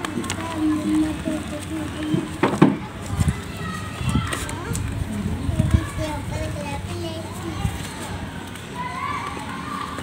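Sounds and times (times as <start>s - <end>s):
children calling and playing: 0.0s - 10.0s
dried mud crunching: 0.0s - 10.0s.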